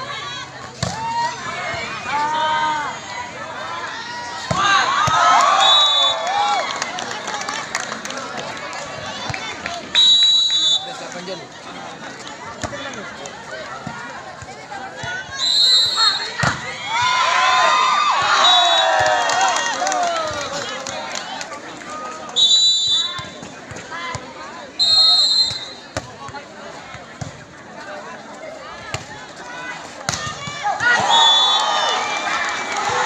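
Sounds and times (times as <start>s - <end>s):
babble of crowd voices: 0.0s - 33.0s
referee's whistle blasts: 5.6s - 6.2s, 10.0s - 11.0s, 15.3s - 16.4s, 22.4s - 23.3s, 24.8s - 25.9s.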